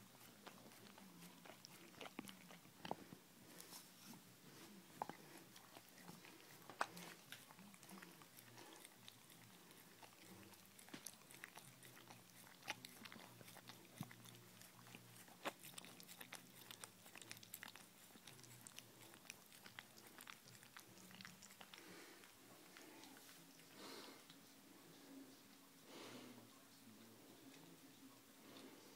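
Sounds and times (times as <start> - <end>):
dog gnawing on bone: 0.1 - 3.2, 4.9 - 22.2.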